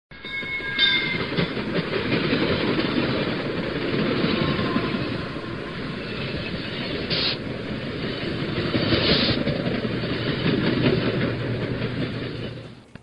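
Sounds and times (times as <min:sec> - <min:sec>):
thin high tones: 0:00.1 - 0:01.4
train rumbling on rails: 0:00.1 - 0:13.0.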